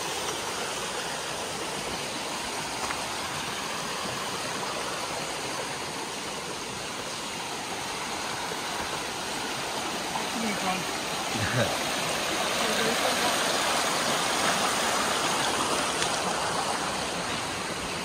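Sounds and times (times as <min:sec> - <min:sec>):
creek rushing over rocks: 0:00.0 - 0:18.0.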